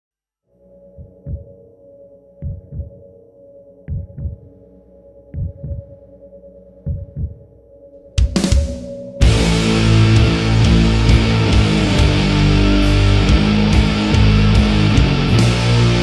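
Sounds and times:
heartbeat-like double thump: 0:02.4 - 0:03.0
low drone: 0:08.8 - 0:16.0.

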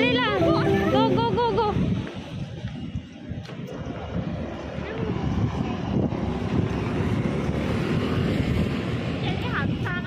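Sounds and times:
street traffic rumble: 0:00.0 - 0:10.0
wind buffeting microphone: 0:00.0 - 0:10.0.

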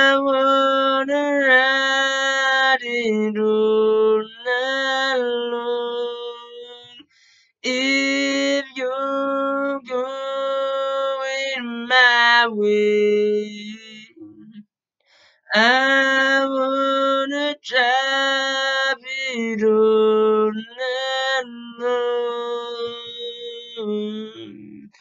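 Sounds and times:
man singing a cappella: 0:00.0 - 0:14.6, 0:15.5 - 0:25.0.

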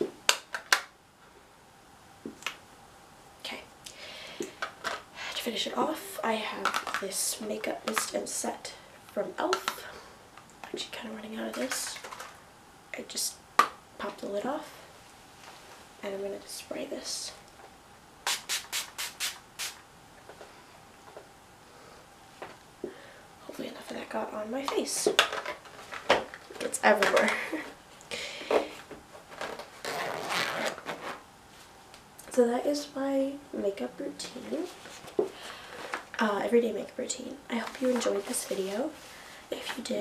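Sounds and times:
spray bottle hissing: 0:18.3 - 0:19.8.

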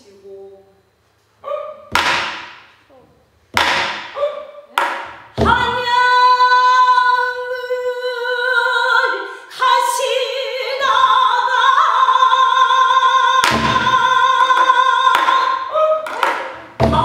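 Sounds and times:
barrel drum struck: 0:01.9 - 0:02.7.

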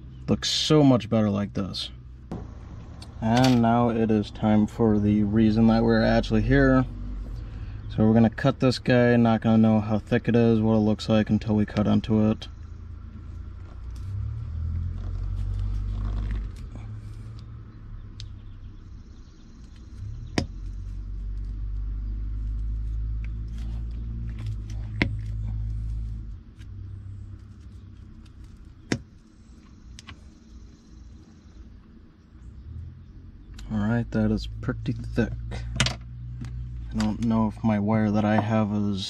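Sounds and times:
low rumble: 0:02.1 - 0:31.7.

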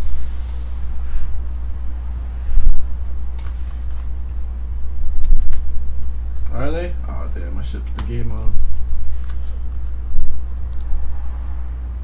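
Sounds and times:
steady low hum: 0:00.0 - 0:12.0
person speaking: 0:06.4 - 0:08.8.

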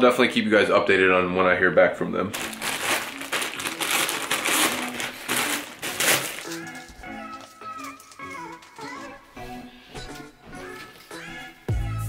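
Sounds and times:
plastic bag crinkling: 0:02.3 - 0:09.3
background music with melody: 0:02.4 - 0:12.0.

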